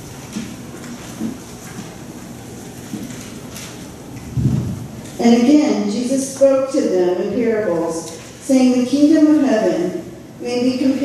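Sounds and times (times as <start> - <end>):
room noise hiss: 0.0 - 11.0
short low rumble: 4.3 - 5.0.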